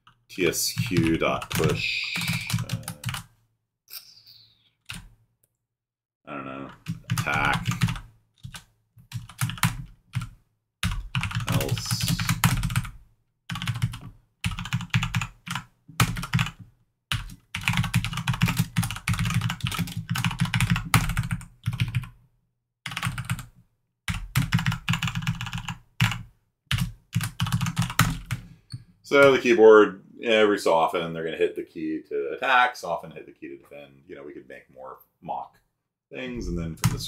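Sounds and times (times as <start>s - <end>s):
typing on computer keyboard: 0.8s - 3.2s, 6.8s - 12.9s, 13.5s - 22.1s, 22.9s - 23.5s, 24.1s - 28.4s.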